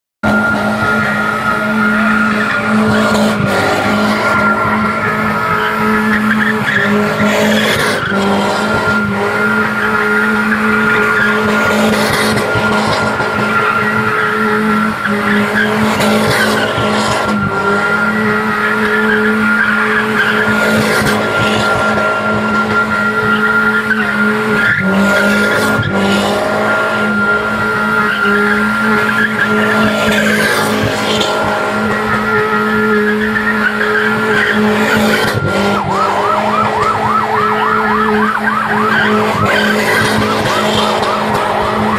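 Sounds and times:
car engine running: 0.2s - 41.9s
car tyres squealing: 0.2s - 41.9s.

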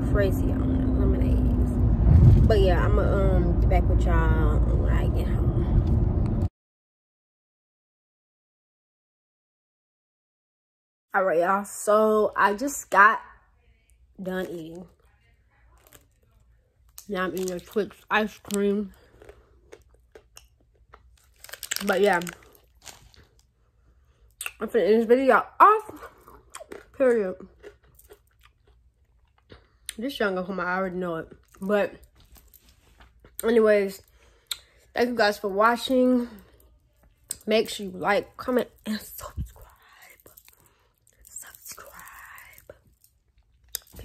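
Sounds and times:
chewing crunches: 16.9s - 23.5s, 25.9s - 30.0s, 38.7s - 44.0s
person whispering: 41.2s - 42.8s.

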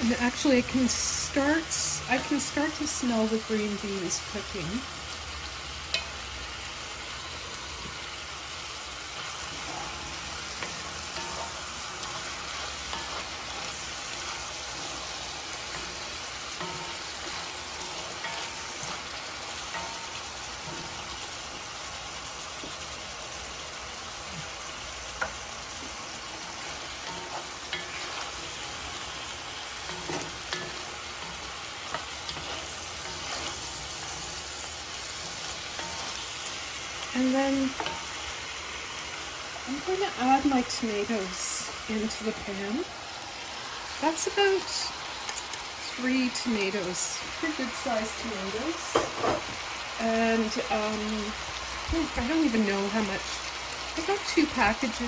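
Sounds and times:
vegetables sizzling in a pot: 0.0s - 55.0s.

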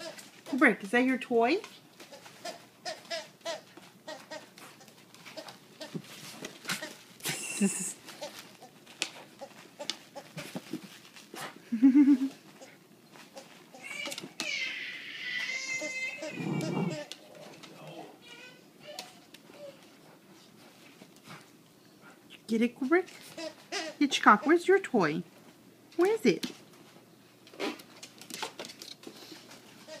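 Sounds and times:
dogs scuffling on wooden floor: 0.0s - 11.6s, 17.0s - 23.9s, 26.4s - 30.0s
small dog whining: 15.4s - 17.1s.

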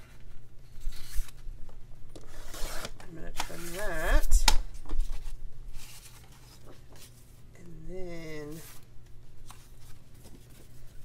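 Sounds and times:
paper sliding and rustling: 5.0s - 7.3s.

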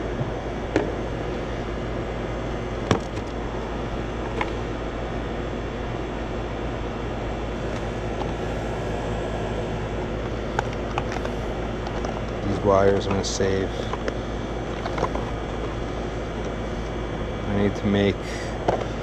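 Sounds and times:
compressor humming: 0.0s - 19.0s
condenser fan rushing air: 0.0s - 19.0s.

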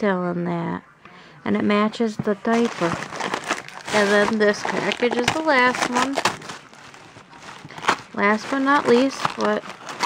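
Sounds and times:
tissue paper rustling: 2.4s - 10.0s
paper crackle: 2.5s - 10.0s.

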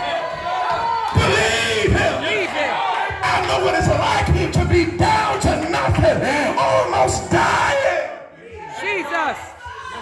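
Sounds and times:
man shouting into a microphone: 1.0s - 10.0s.

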